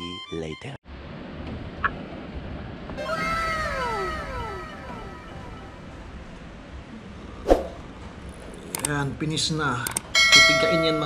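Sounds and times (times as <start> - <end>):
drawn-out meow-like cry: 3.0 - 6.0.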